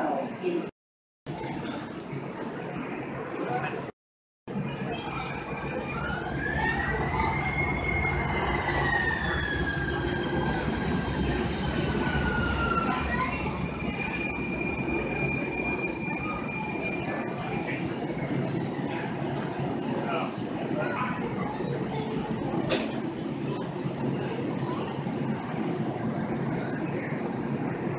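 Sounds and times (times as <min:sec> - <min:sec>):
train low rumble: 0:04.5 - 0:27.9.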